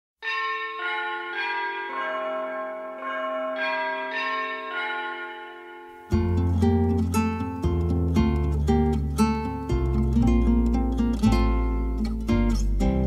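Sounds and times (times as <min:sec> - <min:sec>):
bells ringing: 0:00.2 - 0:07.8.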